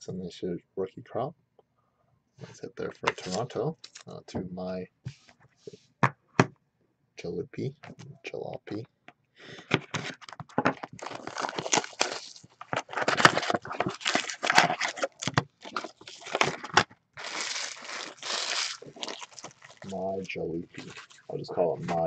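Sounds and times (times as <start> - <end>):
foil wrappers crinkling and tearing: 3.0 - 4.1, 10.0 - 21.3.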